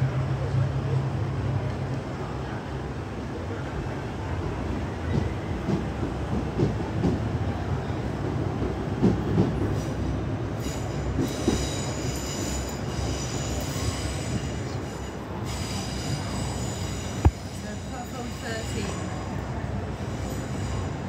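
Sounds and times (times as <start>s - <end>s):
train rumbling over track: 0.0s - 21.0s.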